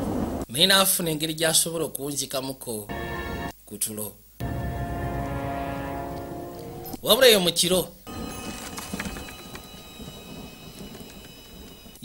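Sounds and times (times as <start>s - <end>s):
fire crackling: 8.0s - 12.0s
fire rushing: 8.1s - 12.0s.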